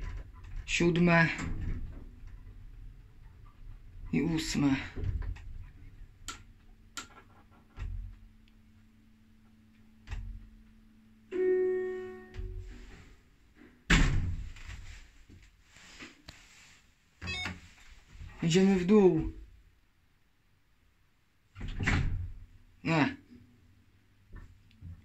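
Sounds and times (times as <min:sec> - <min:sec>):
electronic arrival chime: 0:17.3 - 0:17.5.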